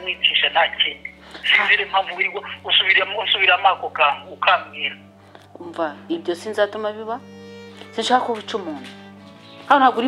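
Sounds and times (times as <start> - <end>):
person talking on phone: 0.0 - 5.1.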